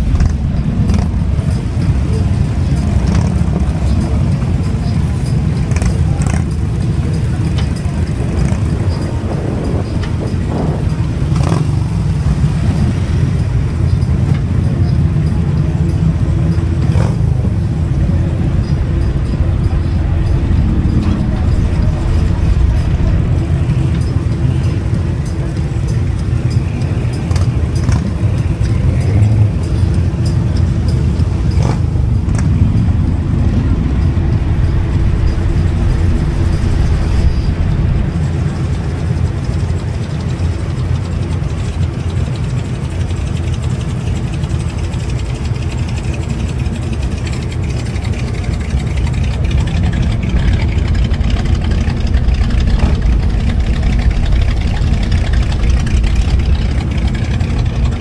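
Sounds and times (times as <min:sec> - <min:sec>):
car engine running: 0:00.0 - 0:58.0.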